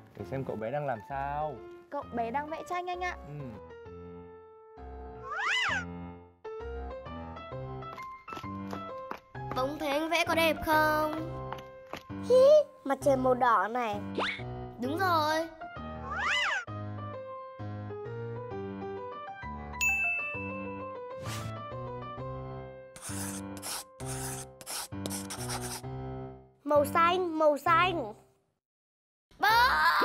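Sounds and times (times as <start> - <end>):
light background music: 0.0 - 28.2
bright chime ding: 19.8 - 20.7.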